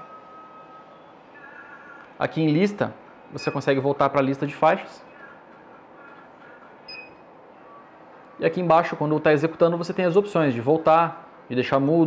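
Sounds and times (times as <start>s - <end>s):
short high-pitched beep: 6.9s - 7.8s.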